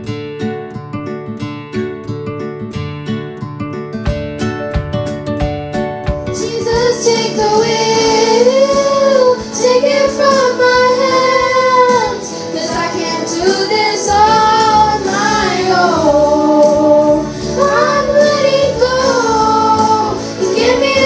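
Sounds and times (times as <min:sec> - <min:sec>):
girls singing into microphones: 0:06.4 - 0:21.0.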